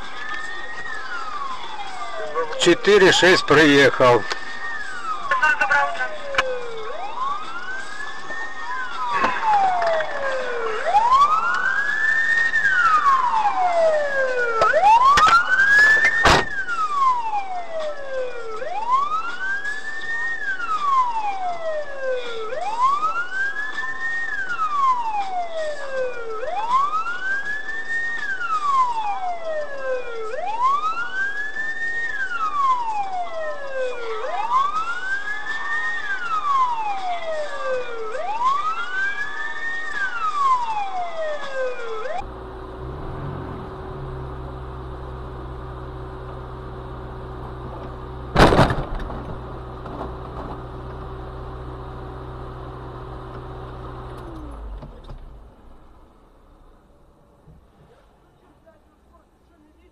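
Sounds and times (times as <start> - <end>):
police car siren wailing: 0.0 - 55.0.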